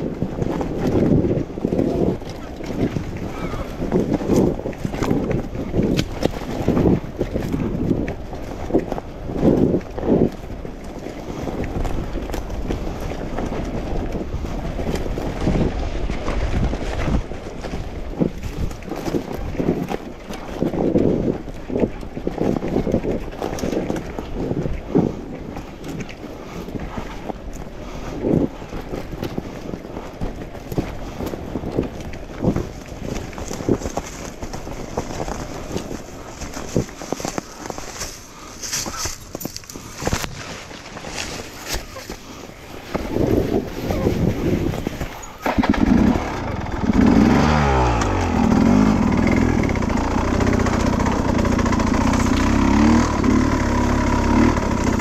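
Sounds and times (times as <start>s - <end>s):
bumps and rattles on rough trail: 0.0s - 55.0s
wind buffeting microphone: 0.0s - 55.0s.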